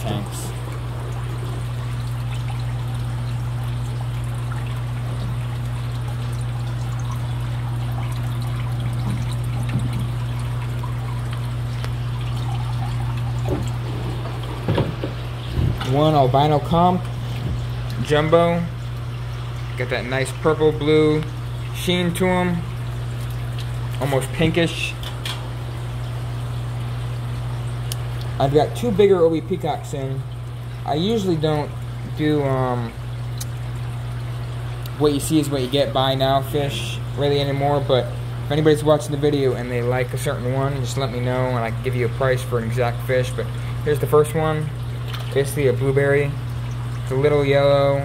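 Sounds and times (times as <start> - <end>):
constant low hum: 0.0 - 48.0
water trickling in a tank: 0.0 - 48.0.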